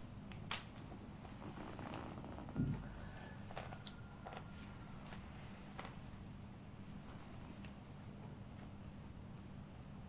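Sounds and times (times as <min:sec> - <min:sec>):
low thump: 0:02.6 - 0:02.9.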